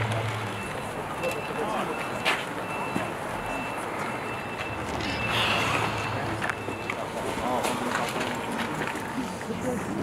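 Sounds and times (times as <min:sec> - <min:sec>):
outdoor background noise: 0:00.0 - 0:10.0
high electronic beep: 0:00.4 - 0:07.3.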